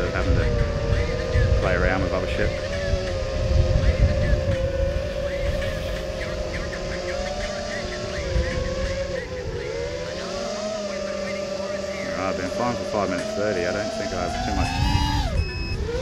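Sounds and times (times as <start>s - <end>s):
quadcopter motors whining: 0.0s - 16.0s
wind buffeting microphone: 0.0s - 16.0s.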